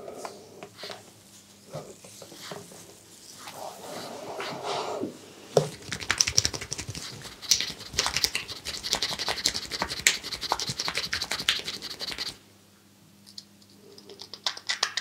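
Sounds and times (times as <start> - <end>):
hands rubbing over head: 5.7 - 12.4.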